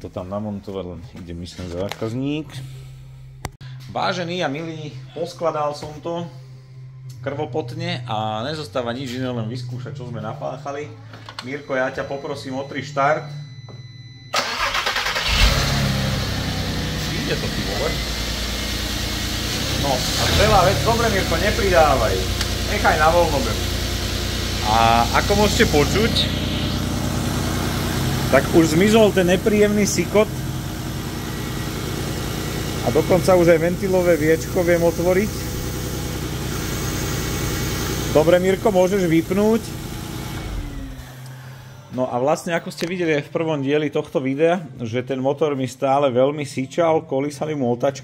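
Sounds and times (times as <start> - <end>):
car engine idling: 14.4 - 41.9.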